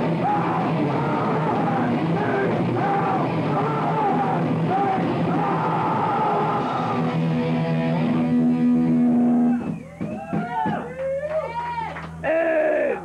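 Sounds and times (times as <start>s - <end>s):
person singing: 0.0s - 7.1s
punk metal band playing: 0.0s - 10.9s.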